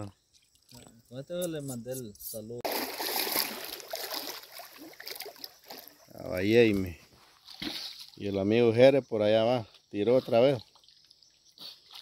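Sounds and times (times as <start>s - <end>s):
water splashing against wooden boat: 2.6s - 6.8s.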